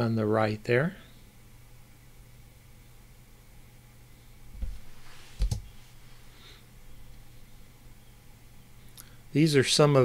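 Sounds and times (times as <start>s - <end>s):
faint room hum: 0.0s - 10.0s.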